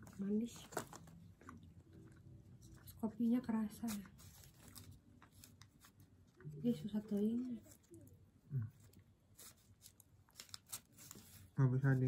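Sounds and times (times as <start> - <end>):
fork ticking and paper rustling: 8.8 - 12.0.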